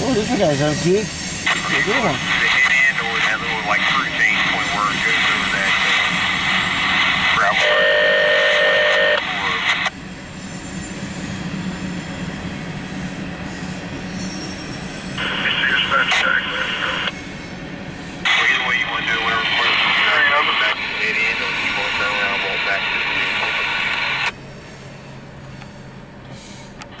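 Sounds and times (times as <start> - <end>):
radio voice transmissions: 1.5 - 9.9, 15.2 - 17.1, 18.2 - 24.3.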